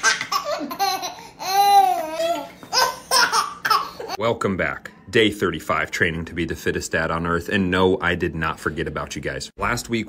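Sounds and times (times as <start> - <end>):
baby laughing: 0.0 - 4.2.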